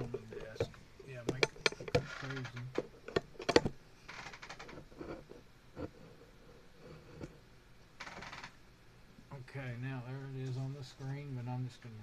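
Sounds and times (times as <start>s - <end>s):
clicks and knocks on a desk: 0.0s - 3.8s.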